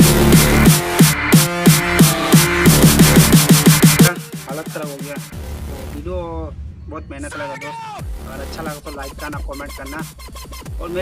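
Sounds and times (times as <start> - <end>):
short bass hits dropping in pitch: 0.0 - 5.7
electronic music: 0.0 - 6.2, 7.3 - 11.0.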